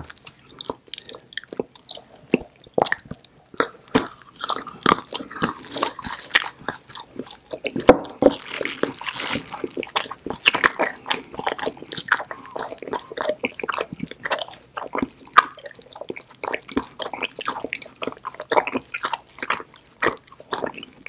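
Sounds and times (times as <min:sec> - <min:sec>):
close chewing mouth clicks: 0:00.0 - 0:21.0.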